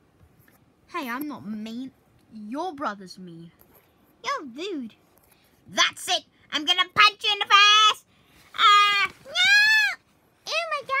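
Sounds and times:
child crying out: 8.6 - 10.0
child wailing: 8.6 - 10.0.

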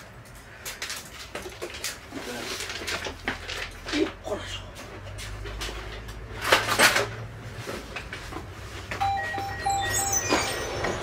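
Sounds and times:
electronic beeping jingle: 9.0 - 11.0.

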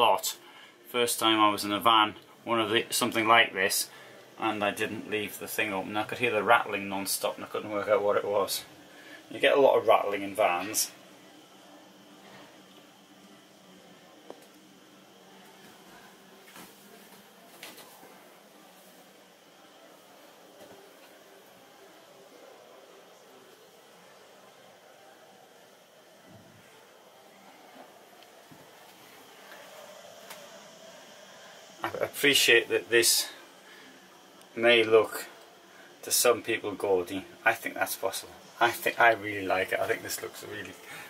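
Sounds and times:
faint distant voices: 0.0 - 41.0
hall background noise: 0.0 - 41.0.

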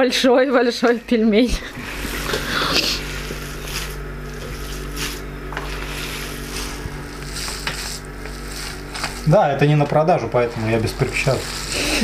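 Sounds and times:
steady low hum: 0.0 - 12.0
hands squelching minced meat: 1.9 - 9.3.

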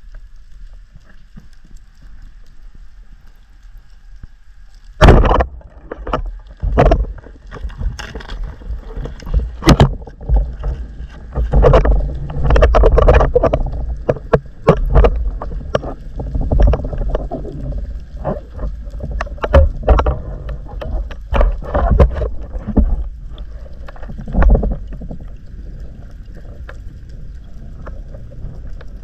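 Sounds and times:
rushing sloshing water underwater: 0.0 - 29.0
sharp loud thump: 5.0 - 5.6.

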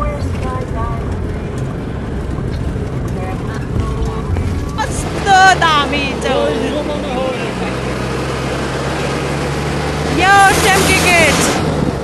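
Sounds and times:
bus engine running: 0.0 - 12.0
road noise: 0.0 - 12.0.

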